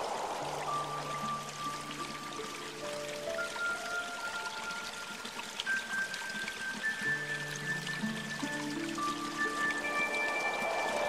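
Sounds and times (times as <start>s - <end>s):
slow calm instrumental music: 0.0s - 11.0s
water trickling: 0.0s - 11.0s.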